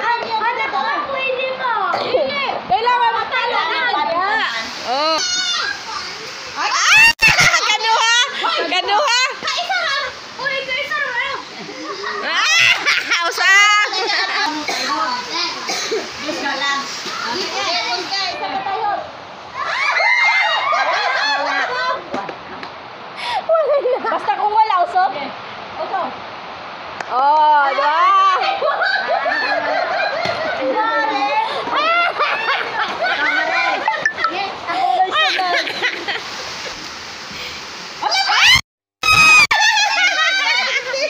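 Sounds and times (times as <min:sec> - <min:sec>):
children talking and calling out: 0:00.0 - 0:22.3, 0:27.1 - 0:36.1
high rising and falling cry: 0:06.6 - 0:07.7, 0:19.5 - 0:21.8, 0:38.0 - 0:40.6.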